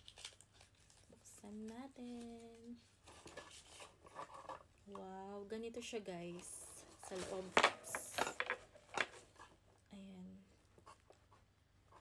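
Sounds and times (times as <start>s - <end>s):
package rustling: 0.0s - 1.3s.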